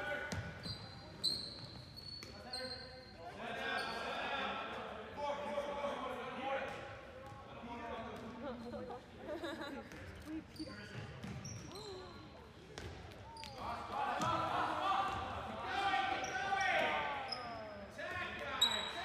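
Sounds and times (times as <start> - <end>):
sneaker squeaks: 0.2 - 4.2, 9.9 - 13.8, 16.2 - 18.0, 18.6 - 19.0.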